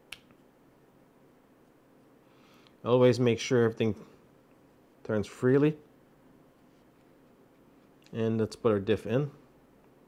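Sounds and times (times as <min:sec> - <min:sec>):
sharp click: 0:00.1 - 0:00.4.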